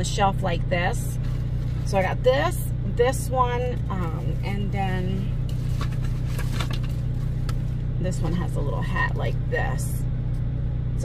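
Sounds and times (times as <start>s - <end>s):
air conditioning running: 0.0s - 11.0s
parked car idling: 0.0s - 11.0s
fabric and paper rustling: 1.2s - 2.1s, 5.5s - 7.7s.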